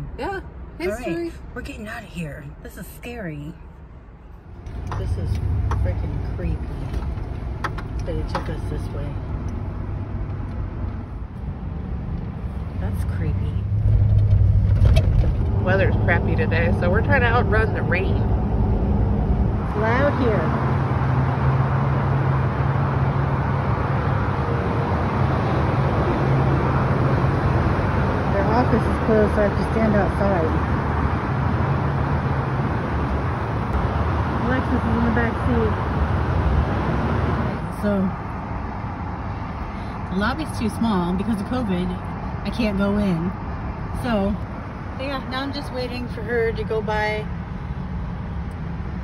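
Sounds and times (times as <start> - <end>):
low rumble of road traffic: 0.0 - 49.0
truck driving from inside cab: 4.3 - 49.0.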